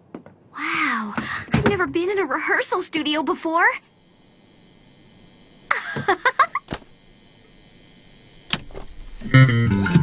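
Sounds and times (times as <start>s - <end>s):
person laughing: 5.7s - 6.8s.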